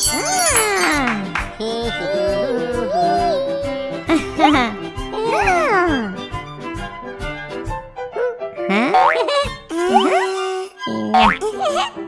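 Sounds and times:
cheerful cartoon music: 0:00.0 - 0:12.0.

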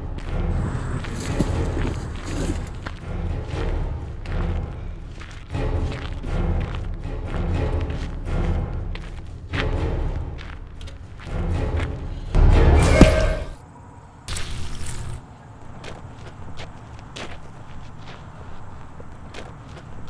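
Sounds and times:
film score music: 0:00.0 - 0:14.2.

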